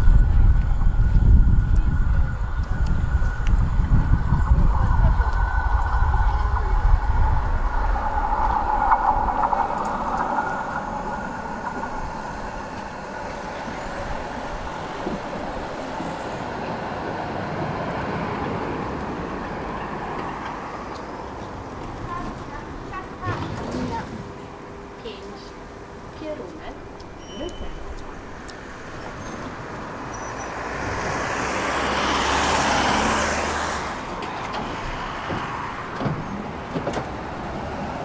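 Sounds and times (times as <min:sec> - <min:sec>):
heavy low vehicle rumble: 0:00.0 - 0:38.0
tram rolling up humming: 0:00.0 - 0:38.0.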